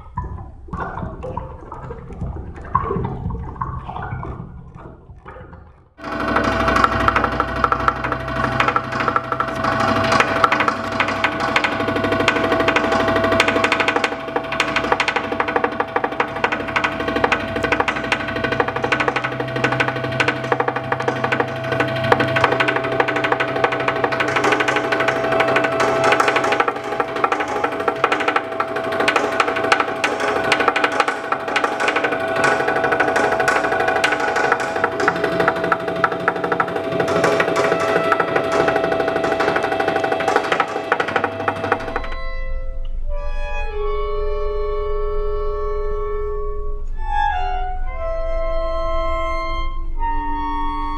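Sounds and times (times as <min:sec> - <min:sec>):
steady held tone: 0:06.0 - 0:46.9
layered sustained pitches: 0:06.0 - 0:50.9.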